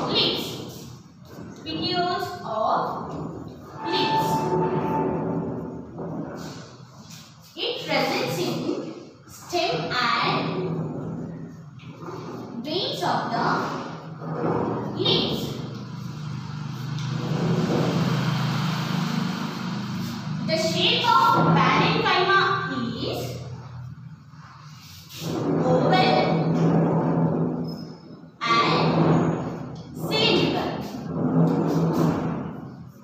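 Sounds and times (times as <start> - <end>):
low noisy bass sound: 1.0 - 7.2, 14.0 - 28.0.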